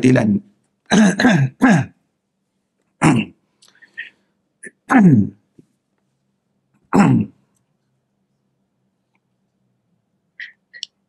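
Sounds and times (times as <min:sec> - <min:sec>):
man coughing: 0:00.9 - 0:02.0, 0:03.0 - 0:03.4, 0:06.9 - 0:07.4.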